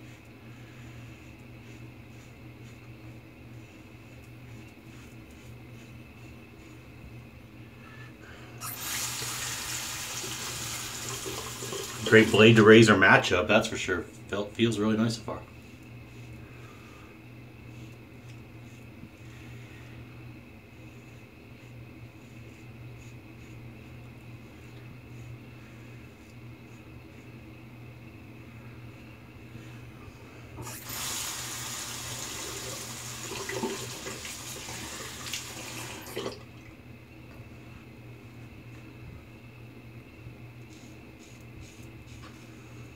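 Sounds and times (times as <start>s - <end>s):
sink tap running: 8.6s - 12.4s, 30.6s - 36.4s.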